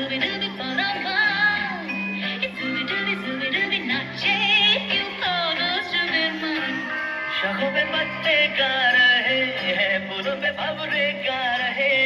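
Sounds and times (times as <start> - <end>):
indian song over loudspeaker: 0.0 - 12.0.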